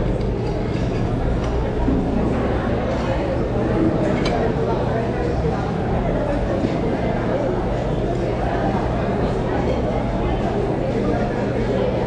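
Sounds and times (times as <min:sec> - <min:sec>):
babble of many people talking: 0:00.0 - 0:12.0.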